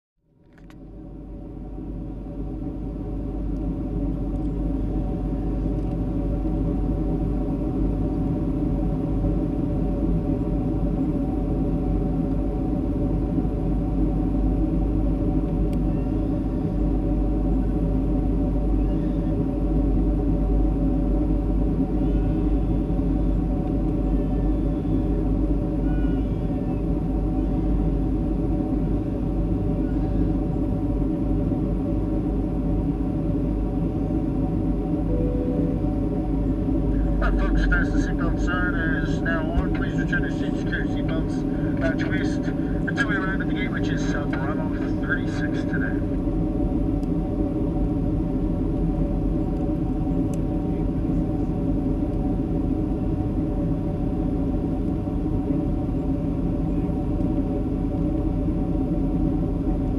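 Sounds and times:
airplane cabin drone: 0.2s - 59.9s.

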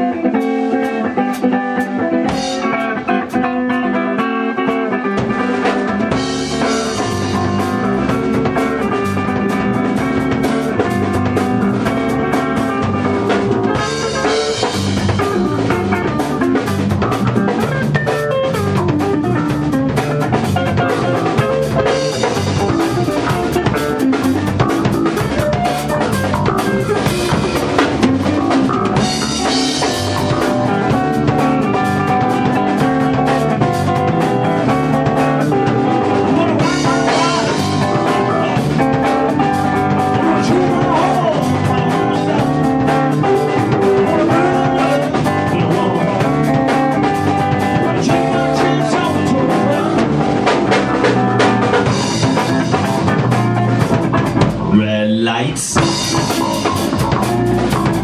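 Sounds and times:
drum kit beat: 0.0s - 58.0s
electric guitar riffing: 0.0s - 58.0s.

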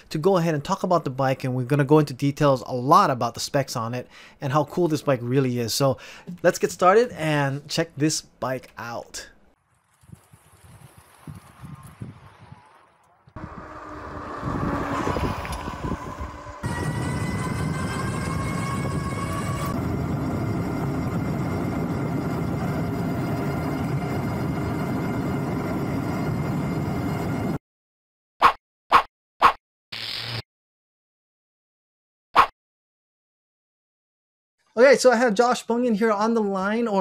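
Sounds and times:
wind and tyre noise: 9.6s - 27.6s
electric hub motor whining: 13.3s - 27.6s.

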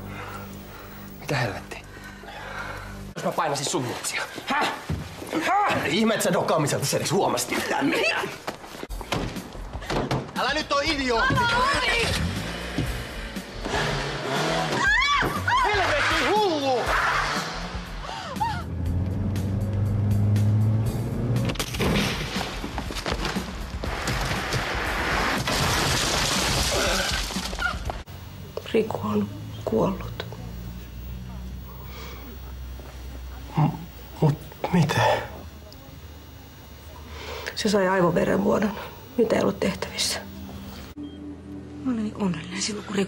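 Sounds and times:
background music: 0.0s - 5.2s, 8.8s - 25.4s, 39.8s - 43.0s
car engine revving: 12.0s - 14.8s, 15.8s - 21.7s
low steady hum: 27.6s - 43.0s.

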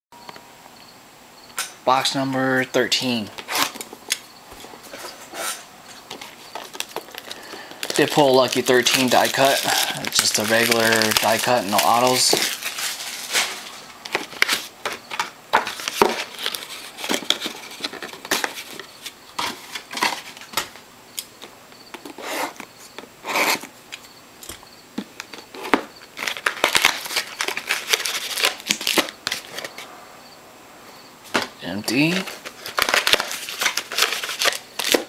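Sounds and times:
plastic wrapping crinkling: 3.4s - 20.5s, 25.2s - 29.9s, 32.0s - 35.0s.

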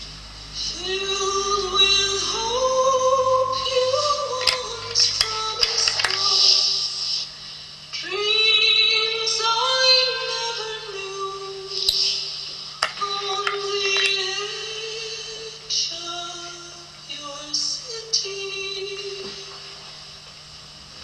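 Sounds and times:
woman singing long notes: 0.6s - 6.8s.

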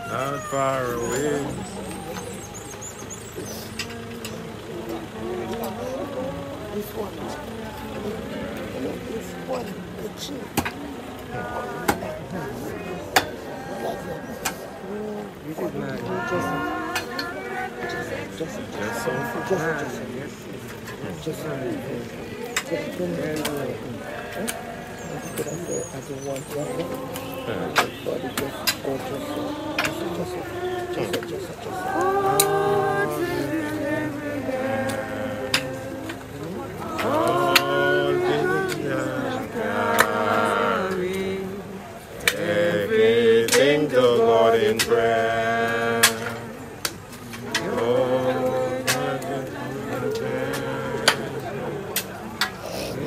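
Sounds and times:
people talking indistinctly: 0.0s - 53.0s.

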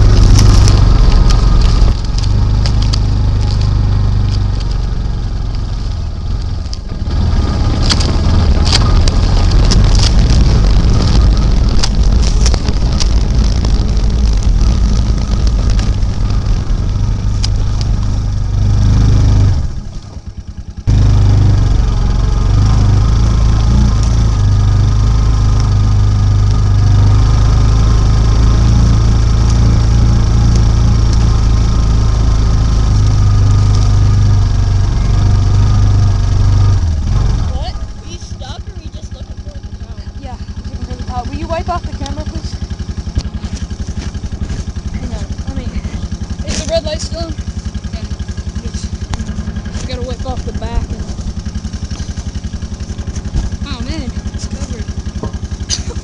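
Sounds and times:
utility vehicle engine running: 0.0s - 56.0s.

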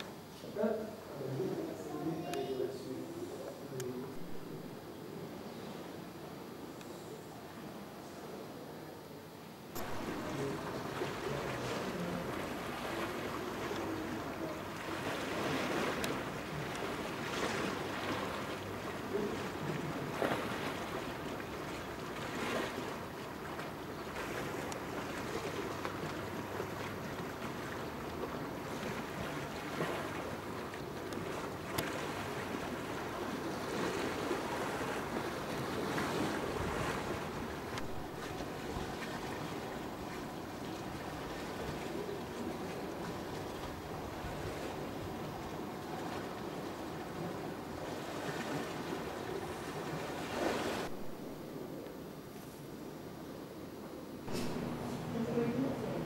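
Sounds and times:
water rushing: 0.0s - 6.0s, 9.8s - 51.8s, 54.2s - 56.0s.

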